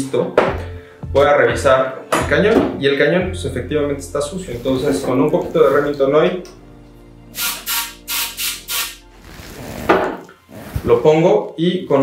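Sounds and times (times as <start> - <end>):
aerosol can spraying bursts: 7.4 - 9.0.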